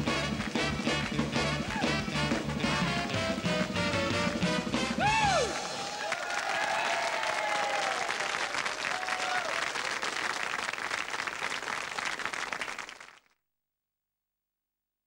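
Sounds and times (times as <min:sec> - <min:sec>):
audience applauding: 0:05.0 - 0:13.4.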